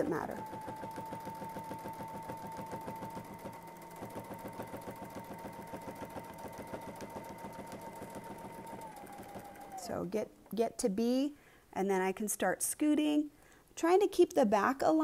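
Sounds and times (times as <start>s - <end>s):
sewing needle ticking: 0.0s - 10.0s
sewing machine motor whine: 0.0s - 10.1s.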